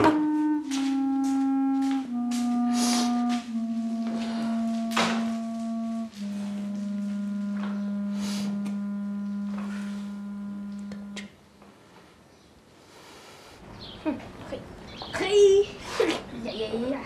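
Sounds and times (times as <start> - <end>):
woodwind holding low notes: 0.0 - 11.3.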